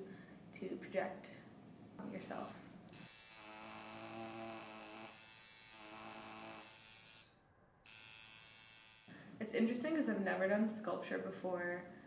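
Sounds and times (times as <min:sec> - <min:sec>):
tattoo machine buzzing: 0:02.0 - 0:09.4.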